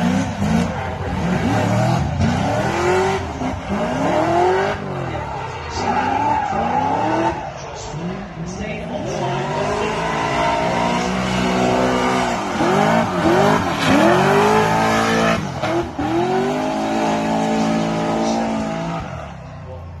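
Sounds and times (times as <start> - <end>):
car engine revving hard: 0.0 - 8.1, 8.9 - 19.4.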